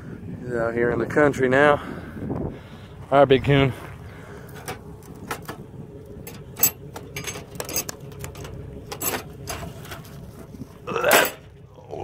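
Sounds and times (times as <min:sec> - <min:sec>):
wire cage trap rattling: 0:06.2 - 0:11.5.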